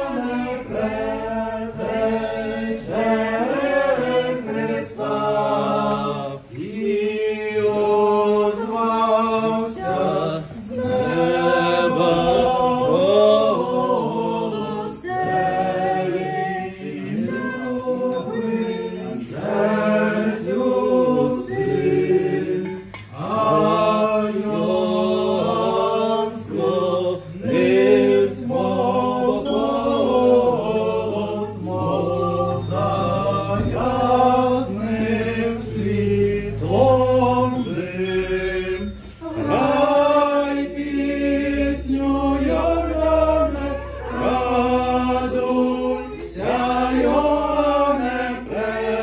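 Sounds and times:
voices singing a church chant: 0:00.0 - 0:49.0.

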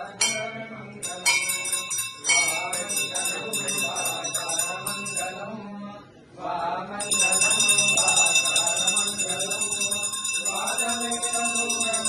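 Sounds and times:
person chanting mantras: 0:00.0 - 0:12.0
hand bell ringing: 0:00.2 - 0:05.6, 0:07.0 - 0:12.0.

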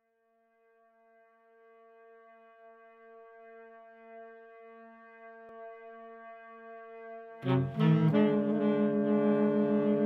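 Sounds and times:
sustained low horn-like note: 0:07.4 - 0:10.0.

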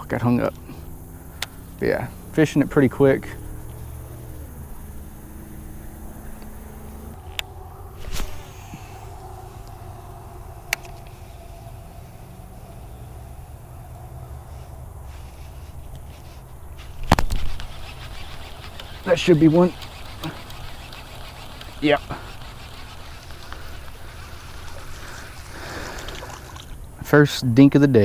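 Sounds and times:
camera handling rumble: 0:10.7 - 0:11.2, 0:15.7 - 0:19.1, 0:19.8 - 0:26.8
sharp clicks: 0:17.1 - 0:24.8
fishing reel cranking: 0:17.2 - 0:26.8.

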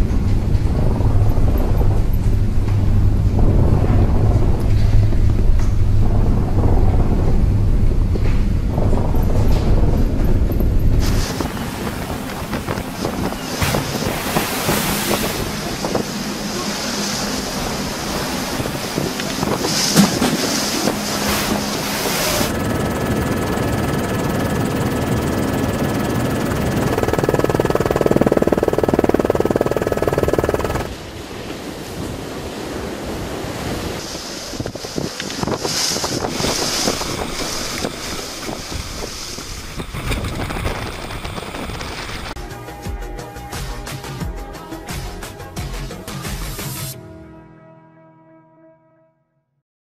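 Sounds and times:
heavy seas breaking: 0:00.0 - 0:42.4
storm wind buffeting microphone: 0:00.0 - 0:42.4
two-note mechanical hum: 0:07.5 - 0:30.9.

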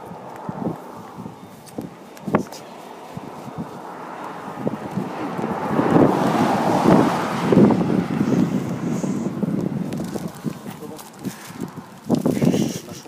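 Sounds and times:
wind gusting over microphone: 0:00.0 - 0:13.0.

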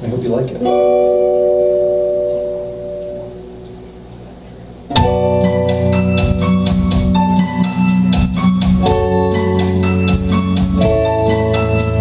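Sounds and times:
electric guitar chord ringing: 0:00.5 - 0:12.0
band song with percussive beat: 0:04.9 - 0:12.0.

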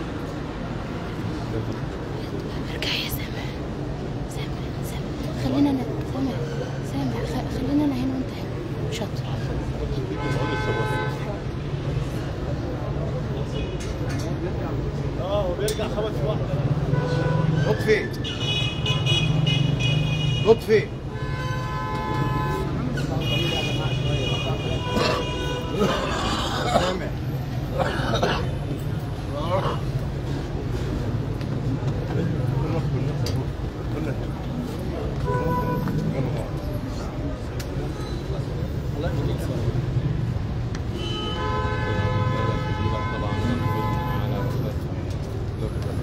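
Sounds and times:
crowd murmur: 0:00.0 - 0:20.3, 0:21.0 - 0:46.0
low street hum: 0:00.0 - 0:46.0
vehicle horns honking: 0:10.1 - 0:11.4, 0:16.8 - 0:26.1, 0:35.2 - 0:36.0, 0:40.9 - 0:44.7.

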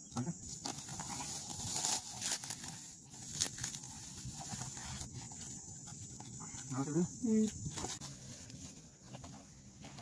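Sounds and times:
dry grass rustling and crackling: 0:00.4 - 0:06.2.

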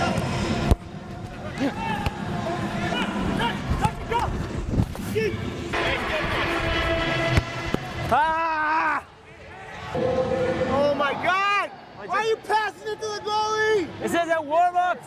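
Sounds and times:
players shouting: 0:01.3 - 0:14.2.

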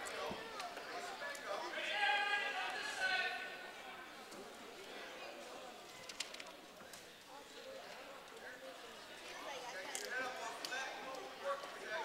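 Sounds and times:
murmur of spectators and coaches: 0:00.0 - 0:12.0.

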